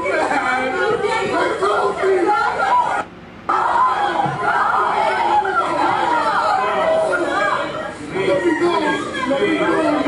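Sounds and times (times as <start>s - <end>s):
overlapping voices: 0.0s - 10.0s.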